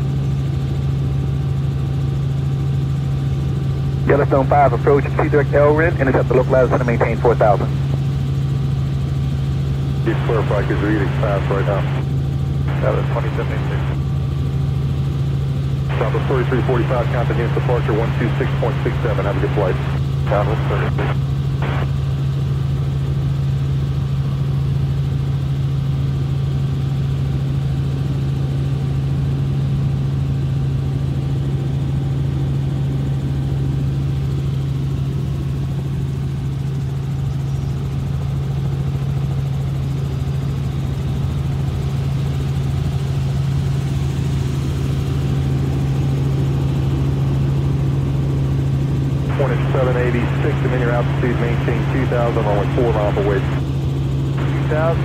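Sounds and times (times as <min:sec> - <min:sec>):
helicopter engine and rotors drone: 0:00.0 - 0:55.0.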